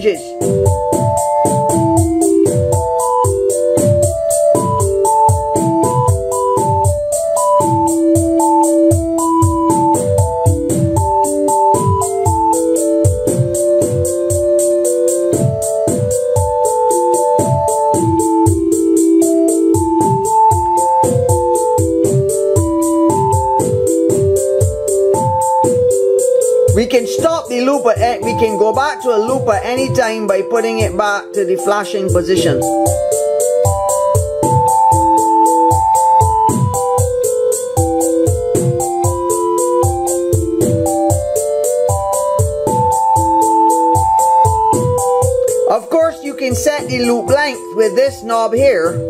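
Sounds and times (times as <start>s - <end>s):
electronic kick and snare drums: 0.0s - 30.1s, 32.1s - 49.0s.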